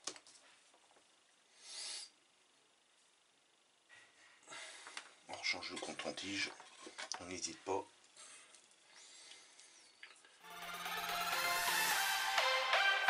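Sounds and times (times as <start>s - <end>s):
electronic music: 10.4s - 13.0s.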